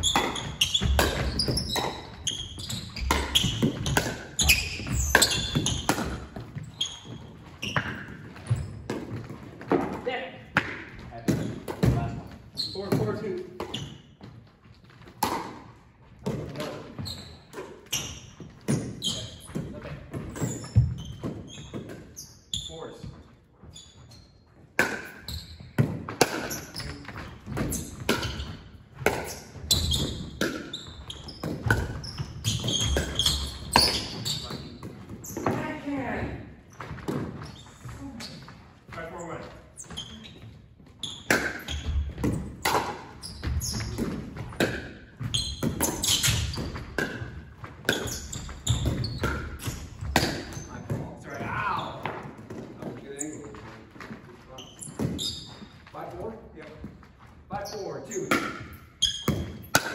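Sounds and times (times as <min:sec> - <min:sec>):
ball bouncing on hardwood floor: 0:00.0 - 0:15.6, 0:16.2 - 0:22.1, 0:23.0 - 0:39.1, 0:39.8 - 0:54.2, 0:54.8 - 0:55.8, 0:58.3 - 0:59.9.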